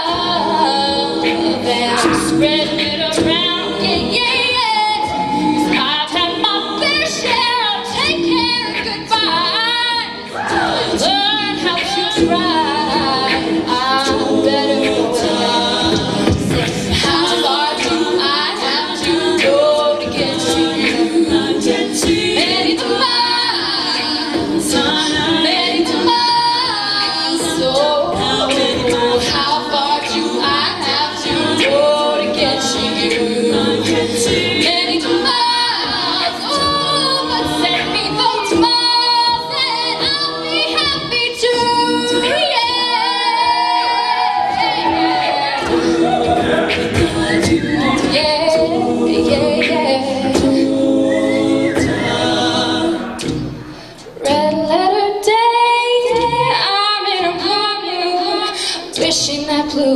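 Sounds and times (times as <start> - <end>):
female lead voice singing: 0.0 - 53.2
group singing backing chords: 0.0 - 59.9.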